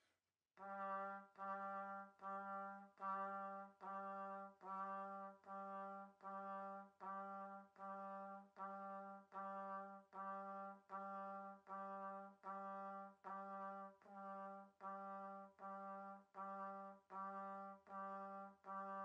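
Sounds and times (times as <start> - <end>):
trumpet playing low notes: 0.6 - 19.0.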